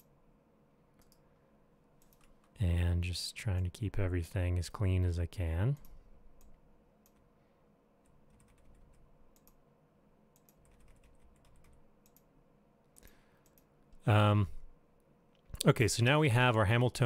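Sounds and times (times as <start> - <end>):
faint room hum: 0.0 - 17.0.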